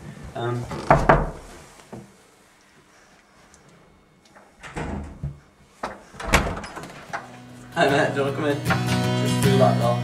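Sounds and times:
wooden door pushed open: 0.7 - 1.5, 4.6 - 5.4, 6.2 - 7.2.

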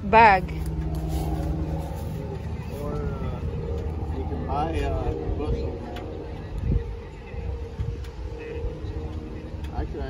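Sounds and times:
car engine idling: 0.0 - 10.0
faint voices: 0.0 - 10.0.

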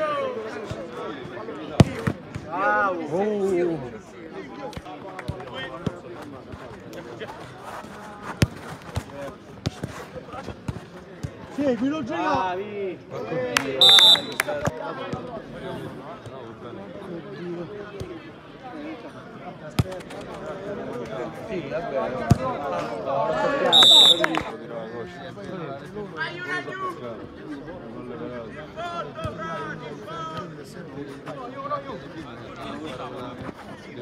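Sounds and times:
voices of players and onlookers: 0.0 - 34.0
football kick thud: 1.8 - 2.5
football kicks on turf: 8.3 - 11.4.

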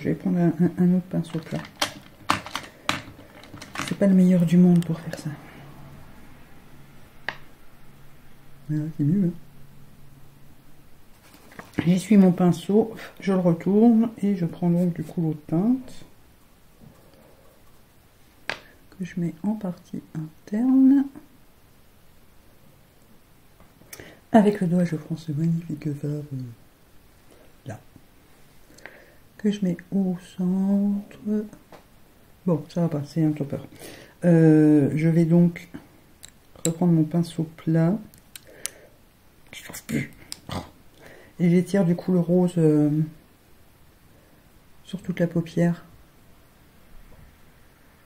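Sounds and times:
person whispering: 3.4 - 5.9, 11.8 - 16.1, 39.5 - 40.7.

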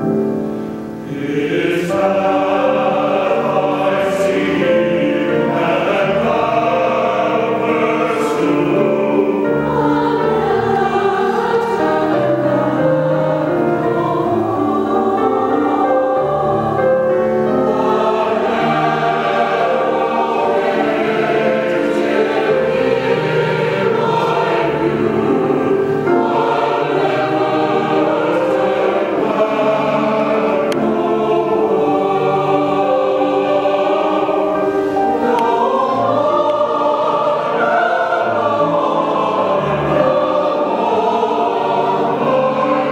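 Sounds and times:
choir singing: 0.0 - 42.9.

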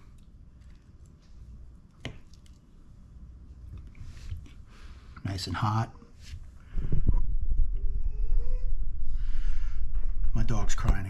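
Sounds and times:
dog whimpering: 7.8 - 8.8.

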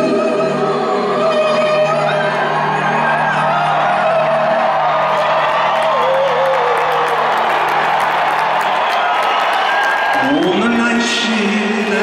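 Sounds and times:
crowd cheering and whooping: 1.2 - 12.0
man singing a long note: 5.8 - 7.5, 10.2 - 12.0.

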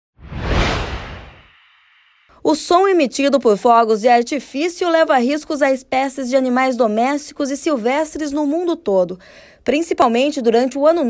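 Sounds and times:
whoosh with deep rumble: 0.2 - 1.9.

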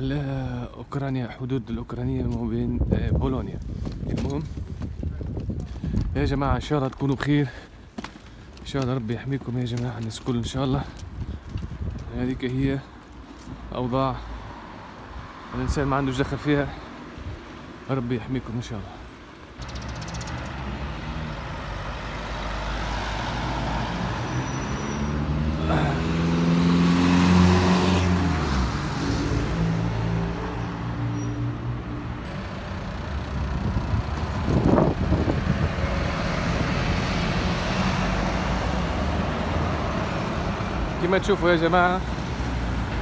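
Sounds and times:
road traffic passing: 0.0 - 43.0
vehicle passing by: 19.6 - 43.0.

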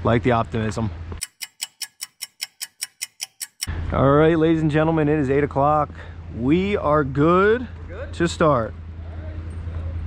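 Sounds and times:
outdoor background noise: 0.0 - 10.0
clock ticking: 1.2 - 3.7.

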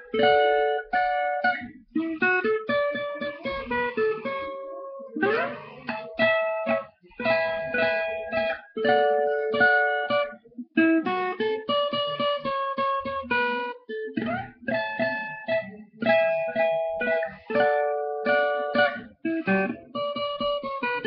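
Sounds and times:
acoustic guitar solo: 0.0 - 21.0.

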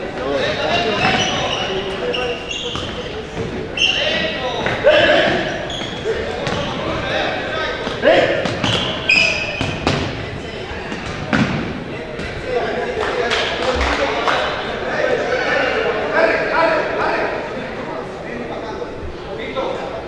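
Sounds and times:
players shouting: 0.2 - 11.0.

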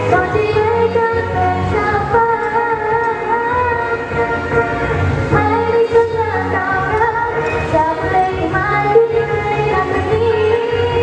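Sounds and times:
woman singing: 0.0 - 4.5, 5.3 - 11.0
backing track music: 0.0 - 11.0.

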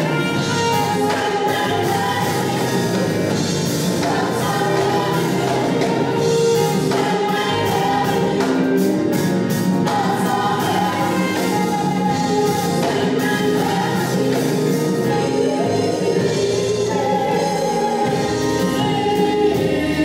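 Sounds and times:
band with drums and percussion: 0.0 - 20.0
small choir singing: 0.0 - 20.0.

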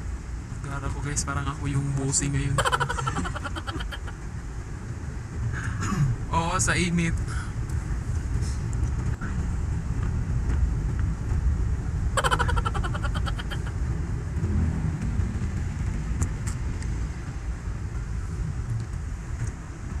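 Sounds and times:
car engine and tyre rumble: 0.0 - 2.5, 4.1 - 12.2, 13.8 - 20.0.

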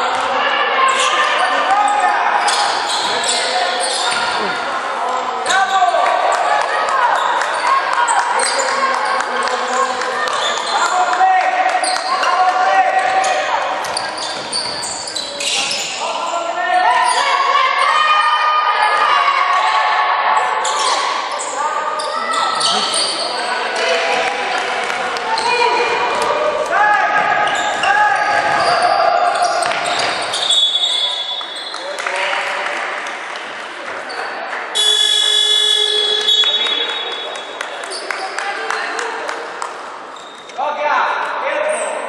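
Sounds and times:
players calling out: 20.4 - 32.2
referee's whistle blast: 34.8 - 37.2.

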